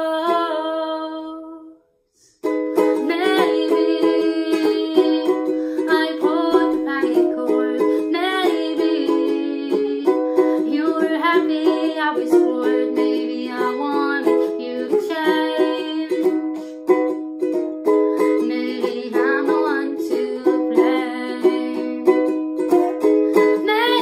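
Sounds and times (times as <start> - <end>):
ukulele strumming chords: 2.4 - 24.0.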